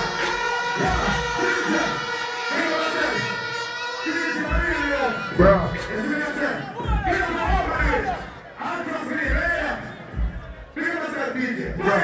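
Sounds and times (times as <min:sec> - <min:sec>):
crowd noise: 0:00.0 - 0:12.0
shouted voices: 0:00.0 - 0:12.0.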